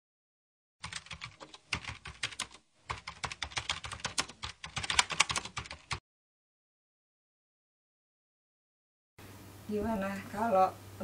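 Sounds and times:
keyboard typing clicks: 0.8 - 6.0.

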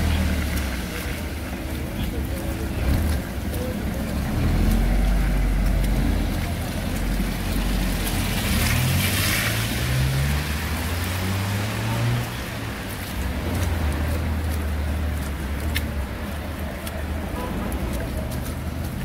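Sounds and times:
tyres hissing on wet road: 0.0 - 19.0
vehicle engines running: 0.0 - 19.0.

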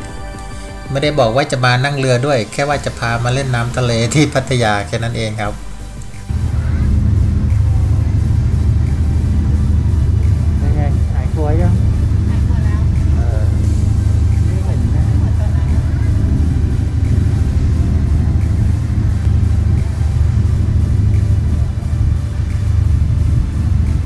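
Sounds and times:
faint passenger voices: 0.0 - 24.0
ferry engine drone: 0.0 - 24.0
water rushing along hull: 0.0 - 24.0.

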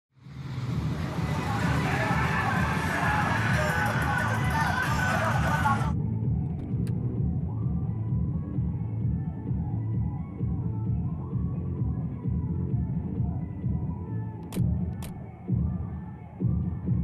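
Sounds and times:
steady low rumble: 0.2 - 3.2
muffled bass-heavy music: 0.2 - 17.0
indistinct voices: 0.9 - 5.9.

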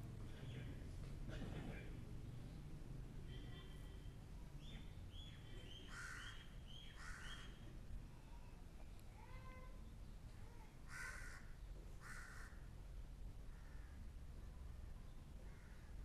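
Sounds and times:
harsh bird calls: 4.6 - 7.6.

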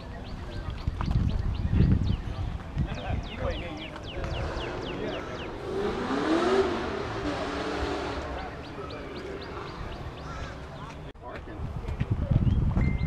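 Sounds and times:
background noise: 0.0 - 13.0
car engine revving: 3.9 - 10.8.

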